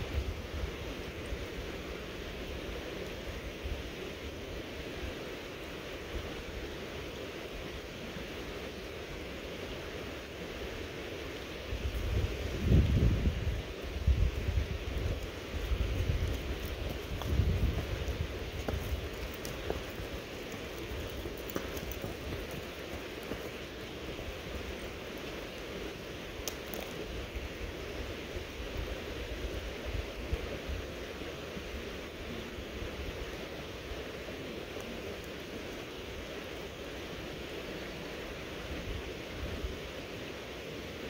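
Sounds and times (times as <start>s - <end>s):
creek flowing: 0.0s - 41.0s
wind on microphone: 11.6s - 26.0s.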